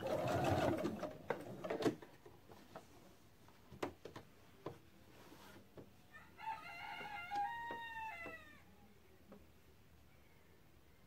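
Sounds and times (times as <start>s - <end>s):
rooster crowing: 6.1s - 8.7s.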